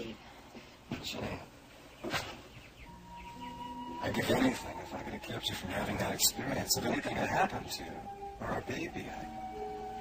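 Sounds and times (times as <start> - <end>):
faint bird chirps: 1.8 - 5.7
soft background music: 2.7 - 10.0.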